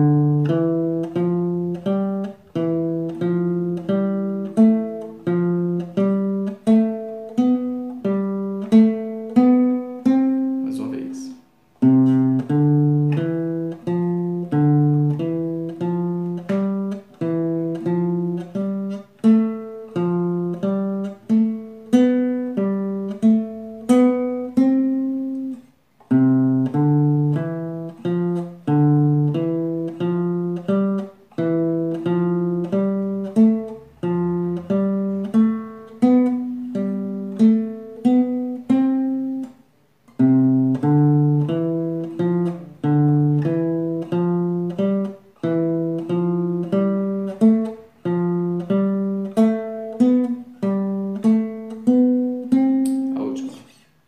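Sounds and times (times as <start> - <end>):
classical guitar plucked notes: 0.0 - 54.0.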